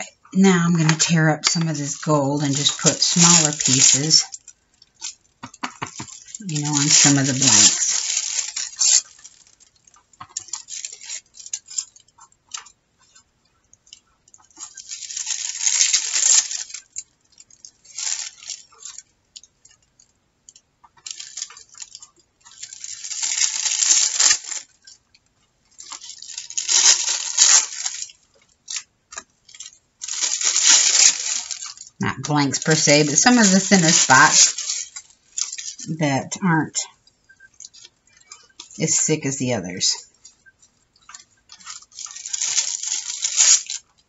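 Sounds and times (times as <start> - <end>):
metallic paper tearing and crinkling: 0.6 - 12.7, 14.4 - 19.1, 21.0 - 25.0, 25.7 - 36.2, 37.0 - 44.0.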